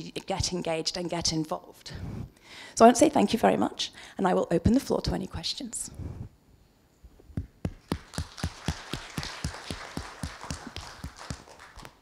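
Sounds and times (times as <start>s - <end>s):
audience applauding: 7.8s - 12.0s.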